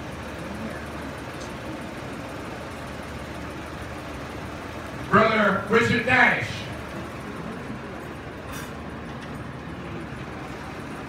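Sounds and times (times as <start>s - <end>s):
large hall background noise: 0.0s - 11.0s.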